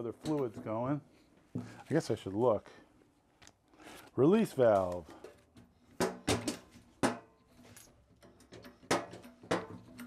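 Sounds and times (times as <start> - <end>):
hydraulic hand pump metallic clacks: 8.1 - 10.0.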